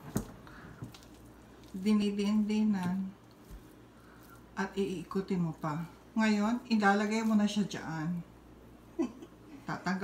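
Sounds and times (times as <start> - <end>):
dough squishing: 0.0 - 8.8
person speaking: 1.7 - 3.2, 4.4 - 8.3.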